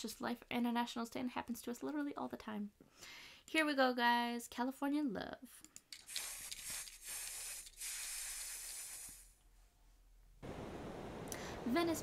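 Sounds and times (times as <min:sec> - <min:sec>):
aerosol spray can hissing: 0:06.0 - 0:09.4.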